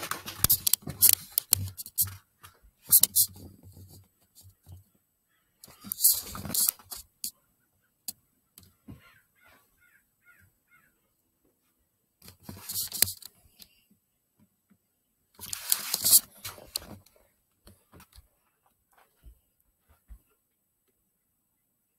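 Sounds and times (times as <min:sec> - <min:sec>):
distant crows cawing: 0:08.9 - 0:11.0.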